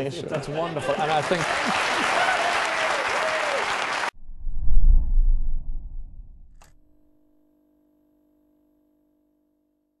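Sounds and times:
low whoosh: 0:04.2 - 0:06.8.

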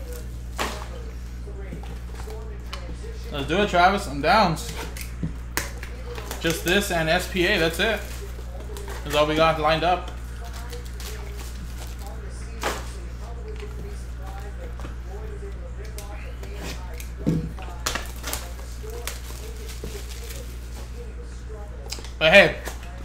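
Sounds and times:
faint background talk: 0:00.0 - 0:23.0
steady low hum: 0:00.0 - 0:23.0.

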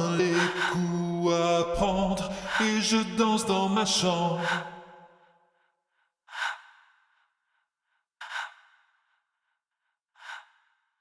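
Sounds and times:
quiet short breaths: 0:04.4 - 0:11.0.

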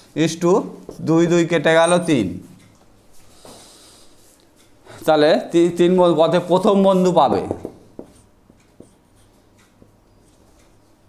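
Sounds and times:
marker writing on a whiteboard: 0:06.4 - 0:10.7.

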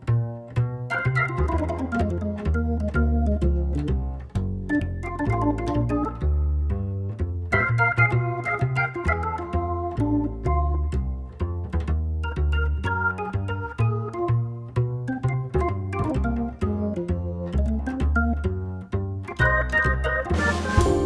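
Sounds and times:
walking bass: 0:00.0 - 0:21.0
organ melody: 0:00.8 - 0:21.0
drums and cymbals: 0:20.3 - 0:21.0.

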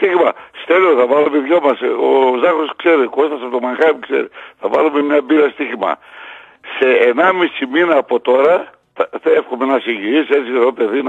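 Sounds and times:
man talking on radio: 0:06.7 - 0:11.0.

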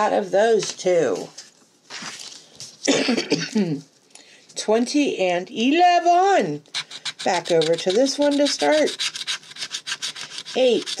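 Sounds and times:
woman coughing: 0:02.8 - 0:03.8.

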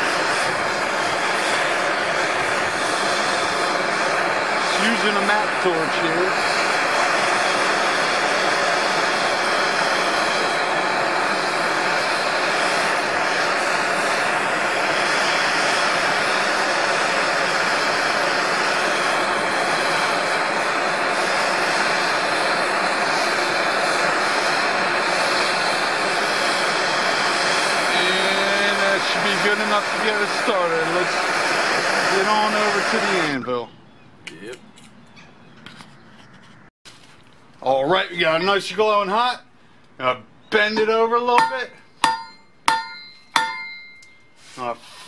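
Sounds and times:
gas torch hissing: 0:00.0 - 0:33.6, 0:40.6 - 0:45.0.

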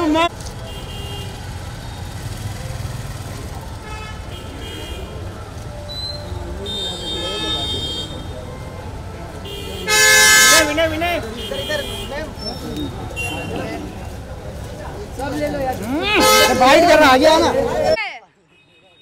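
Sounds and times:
vehicle horns honking: 0:00.6 - 0:02.1, 0:03.7 - 0:14.2, 0:16.0 - 0:17.5, 0:18.4 - 0:19.0
people talking: 0:04.4 - 0:18.3.

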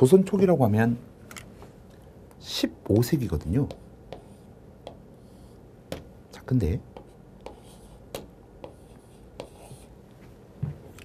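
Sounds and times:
chalk tapping on chalkboard: 0:03.4 - 0:05.3, 0:06.8 - 0:10.0
chalk scratching: 0:03.4 - 0:05.6, 0:06.9 - 0:10.0.

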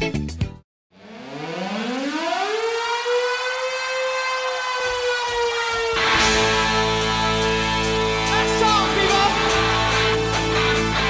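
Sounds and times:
siren-like wailing tone: 0:00.9 - 0:10.3.

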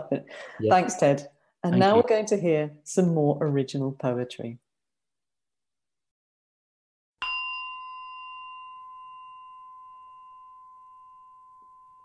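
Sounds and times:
bell-like chime ringing: 0:07.2 - 0:12.0.

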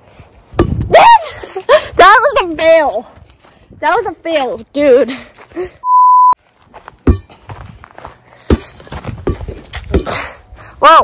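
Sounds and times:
censor bleep: 0:05.8 - 0:06.4.

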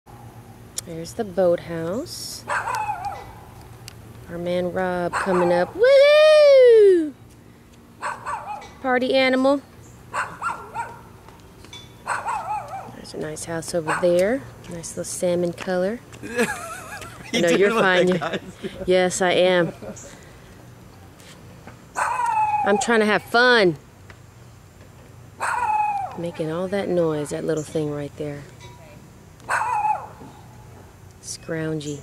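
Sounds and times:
dog howling: 0:25.4 - 0:26.2, 0:29.5 - 0:30.2.

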